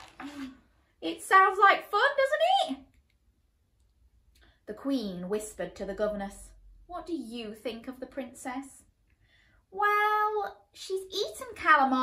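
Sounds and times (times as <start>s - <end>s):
woman speaking: 0.2s - 2.9s, 4.7s - 8.9s.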